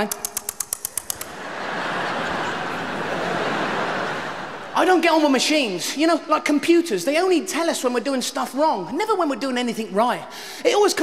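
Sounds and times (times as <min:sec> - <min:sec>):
tongue-click tuts: 0:00.0 - 0:01.3
audience laughing: 0:01.1 - 0:05.5.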